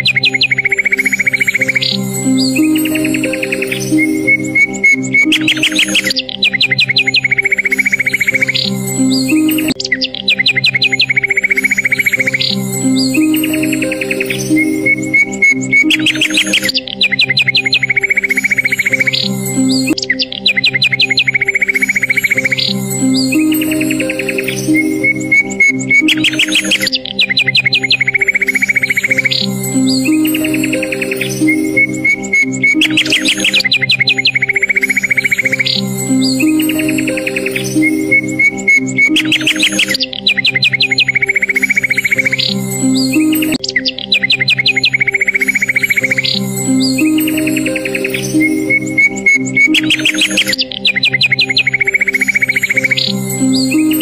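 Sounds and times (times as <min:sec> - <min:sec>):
birdsong whistle and trill: 0:00.0 - 0:54.0
slow music of low chords: 0:00.0 - 0:54.0.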